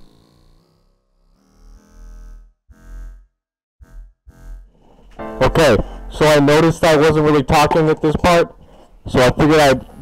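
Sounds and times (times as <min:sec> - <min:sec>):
synth bass notes: 0:00.1 - 0:07.4.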